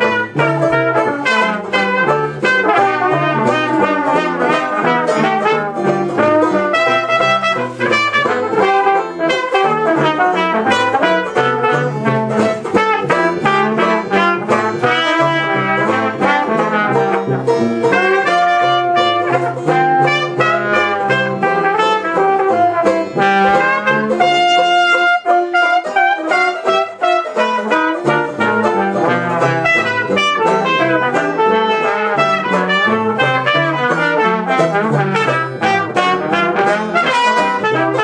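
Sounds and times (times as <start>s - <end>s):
rhythm section: 0.0s - 38.0s
trombone: 0.0s - 38.0s
trumpet: 0.0s - 38.0s
walking bass line: 0.0s - 38.0s.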